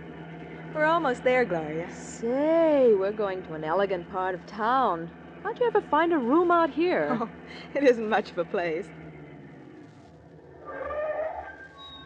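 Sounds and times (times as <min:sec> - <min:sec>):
taxi engine hum: 0:00.0 - 0:12.0.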